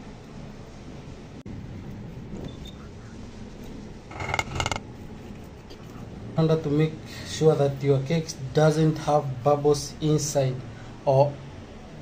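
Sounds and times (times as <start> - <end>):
metal cake tin rattling on counter: 4.1 - 4.8.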